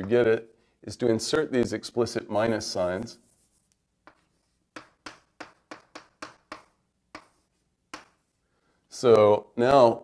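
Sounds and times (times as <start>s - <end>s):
pen tapping on writing surface: 4.0s - 8.2s.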